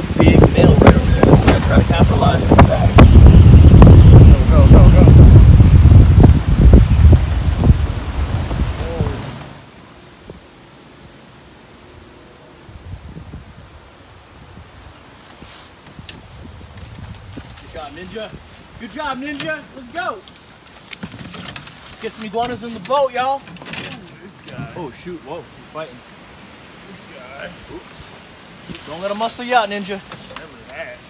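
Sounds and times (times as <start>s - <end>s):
wind buffeting microphone: 0.0s - 9.6s, 12.0s - 15.1s, 15.8s - 19.9s
faint rustles: 14.6s - 25.0s, 26.4s - 31.0s.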